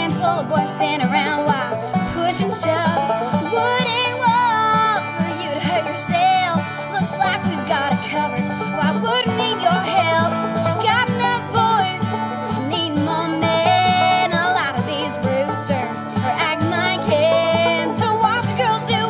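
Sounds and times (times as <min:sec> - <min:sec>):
fiddle lead line: 0:00.0 - 0:19.0
strummed string instruments: 0:00.0 - 0:19.0.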